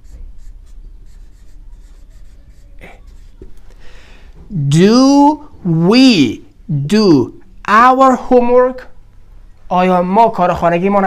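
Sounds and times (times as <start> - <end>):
marker writing on whiteboard: 0.0 - 3.7.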